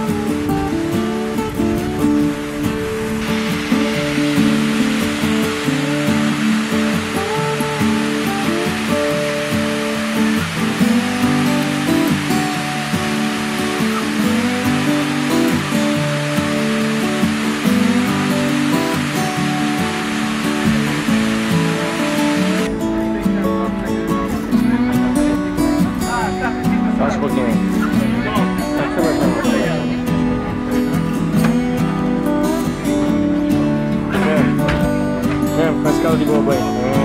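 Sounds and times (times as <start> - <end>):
acoustic guitar music: 0.0 - 37.0
loud rushing noise: 1.6 - 22.7.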